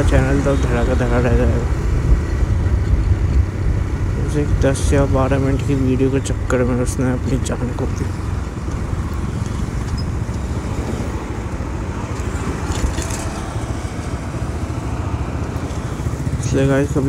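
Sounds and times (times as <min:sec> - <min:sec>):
man talking: 0:00.0 - 0:01.8, 0:04.1 - 0:08.2, 0:16.3 - 0:17.0
motorcycle engine rumbling: 0:00.0 - 0:17.0
road noise: 0:00.0 - 0:17.0.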